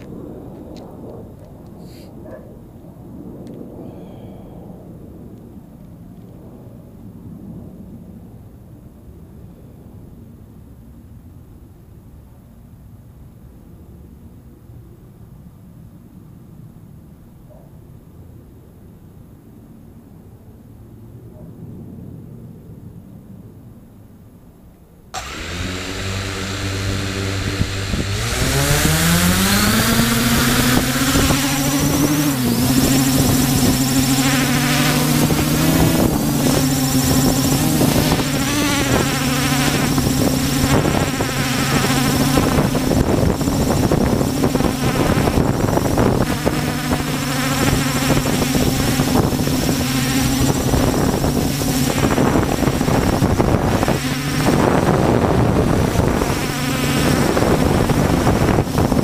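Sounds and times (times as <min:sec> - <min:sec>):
drone motors buzzing: 0:25.2 - 0:59.0.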